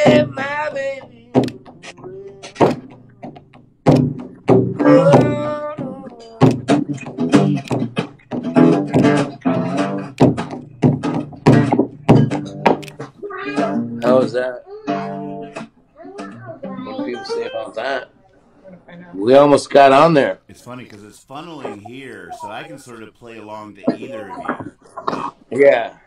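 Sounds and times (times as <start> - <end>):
man singing: 0.0 - 1.6, 4.8 - 6.4, 20.5 - 24.6
acoustic guitar strumming: 0.0 - 17.7, 20.5 - 24.8.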